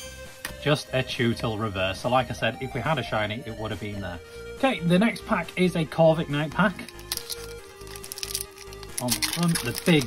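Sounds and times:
background music with held notes: 0.0s - 10.0s
foil wrapper crinkling and tearing: 6.8s - 10.0s.

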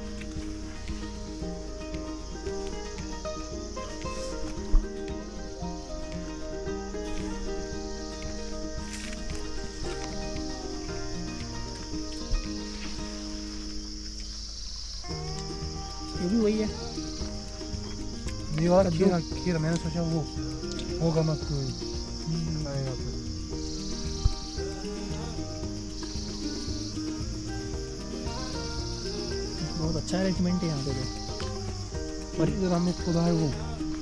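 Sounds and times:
crickets chirring: 0.0s - 34.0s
instrumental background music: 0.0s - 34.0s.

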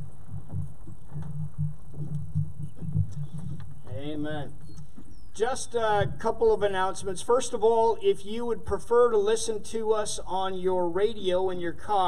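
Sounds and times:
man speaking into a microphone: 3.9s - 4.6s, 5.4s - 12.0s.

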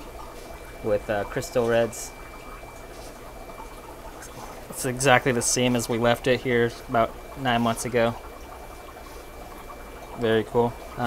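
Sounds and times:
aquarium water bubbling: 0.0s - 11.0s
faint steady hum: 0.0s - 11.0s.

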